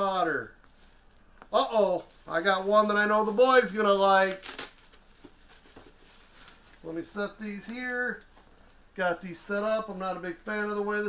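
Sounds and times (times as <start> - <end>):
faint rustling: 0.0 - 11.0.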